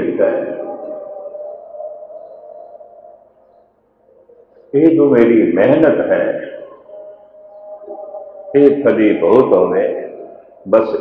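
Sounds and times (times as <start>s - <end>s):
amplified man's voice ringing tone: 0.0s - 3.1s, 4.7s - 11.0s.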